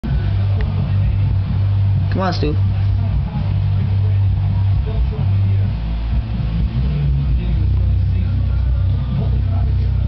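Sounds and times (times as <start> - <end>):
aquarium pump humming: 0.0 - 10.0.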